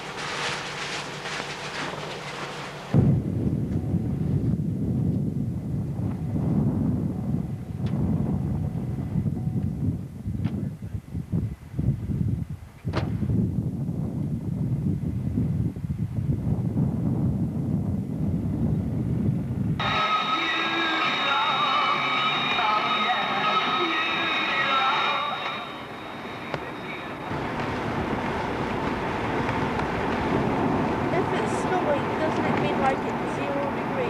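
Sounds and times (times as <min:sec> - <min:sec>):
low rumble: 0:00.0 - 0:34.0
car driving with high whine: 0:19.8 - 0:34.0.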